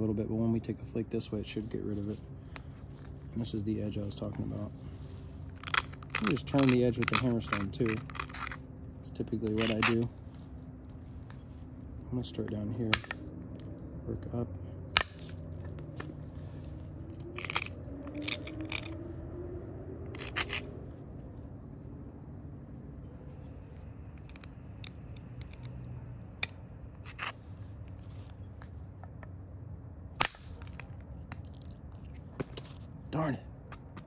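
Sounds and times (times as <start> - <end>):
stone scraping on stone: 5.5 - 10.2, 15.0 - 19.0, 20.1 - 20.7, 26.4 - 28.2.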